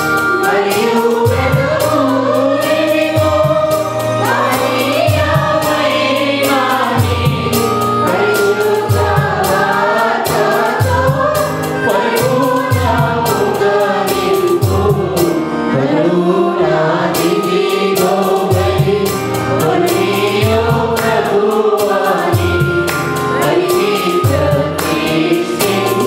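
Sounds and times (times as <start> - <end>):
mixed choir singing: 0.0 - 26.0.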